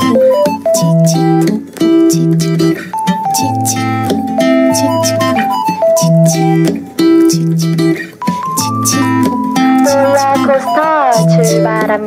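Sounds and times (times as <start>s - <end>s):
guitar: 0.0s - 12.0s
indie pop instrumental: 0.0s - 12.0s
bass line: 3.1s - 7.9s.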